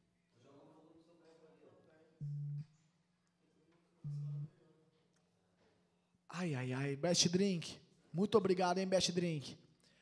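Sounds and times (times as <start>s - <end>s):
low electronic buzz tone: 2.2s - 2.7s, 4.0s - 4.6s.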